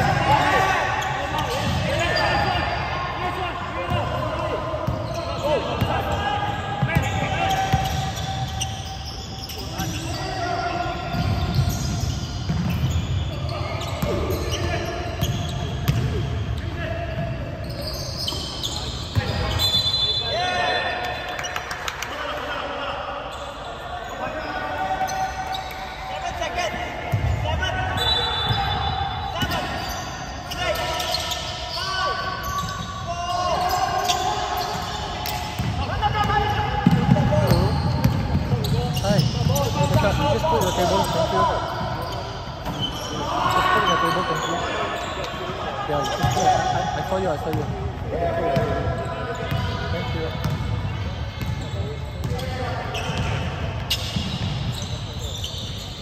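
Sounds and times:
basketball bouncing on court: 1.4 - 2.0, 11.1 - 16.3, 34.0 - 41.2, 47.4 - 55.9
players calling out: 22.3 - 56.0.

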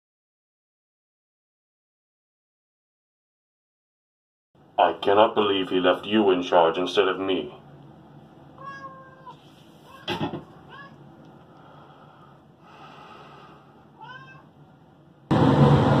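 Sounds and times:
cat meowing: 8.6 - 11.0, 14.0 - 14.5
thump: 10.0 - 10.5
loud burst of noise: 15.3 - 16.0.

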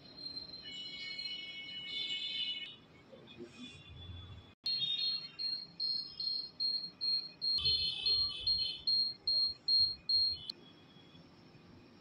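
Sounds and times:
short high beeps: 4.7 - 10.5.

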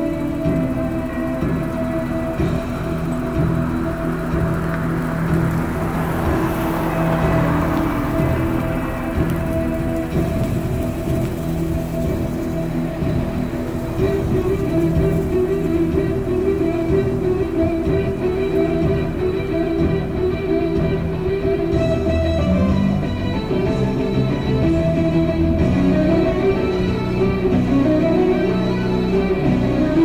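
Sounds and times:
music from car radio: 0.0 - 30.0.

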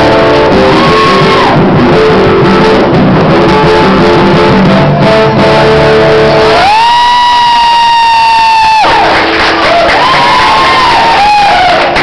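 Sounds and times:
acoustic guitar: 0.0 - 12.0
audience whooping and cheering: 0.5 - 1.8, 6.4 - 12.0.

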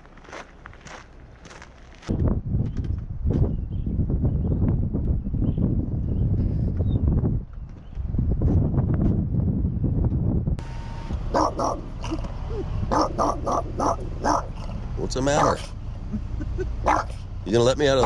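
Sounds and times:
dull low rumbling: 0.0 - 18.0
dog yipping and whining: 11.3 - 14.5, 16.8 - 17.2.

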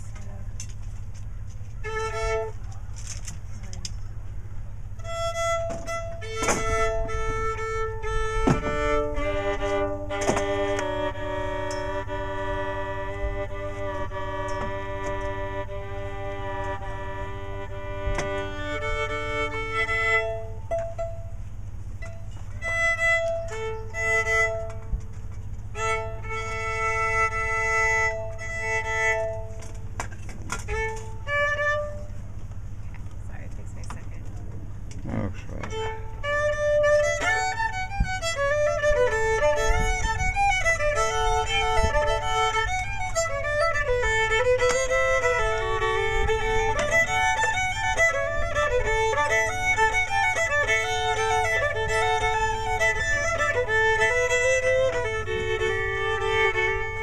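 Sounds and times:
fiddle double stops being bowed: 0.0 - 4.2, 4.8 - 32.7, 35.5 - 57.0
low hum: 0.0 - 57.0.

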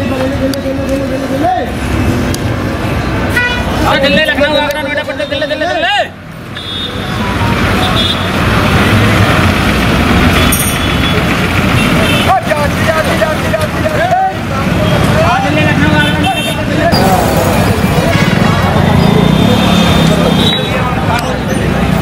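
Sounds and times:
bus engines running: 0.0 - 22.0
road traffic noise: 0.0 - 22.0
voices calling out: 10.1 - 22.0.

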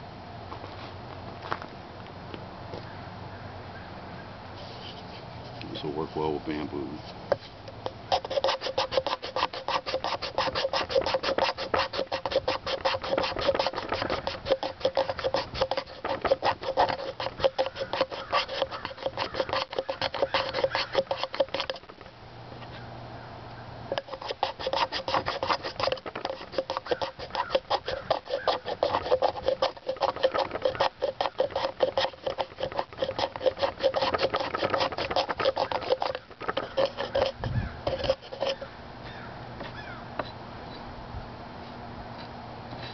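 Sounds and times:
knife scraping bamboo: 4.6 - 6.0, 6.6 - 22.1, 23.9 - 40.4.

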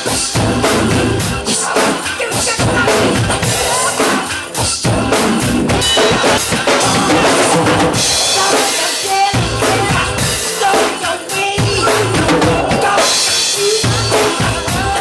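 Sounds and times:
drum kit playing a groove: 0.0 - 15.0
recorded pop song: 0.0 - 15.0.

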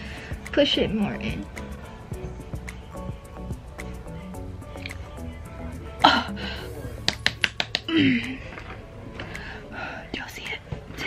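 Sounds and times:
woman whispering: 9.9 - 10.7.

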